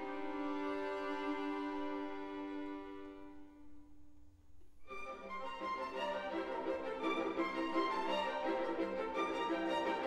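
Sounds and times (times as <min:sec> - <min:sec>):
string orchestra playing: 0:00.0 - 0:03.6, 0:04.9 - 0:10.0.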